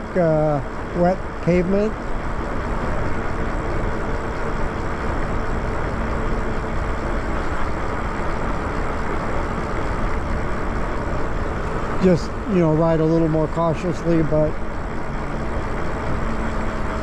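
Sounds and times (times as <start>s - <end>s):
faint hum: 0.0s - 17.0s
road noise: 0.0s - 17.0s.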